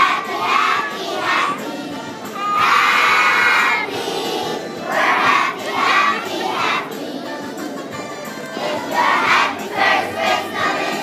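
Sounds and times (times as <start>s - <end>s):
children singing loudly: 0.0s - 7.6s, 8.6s - 11.0s.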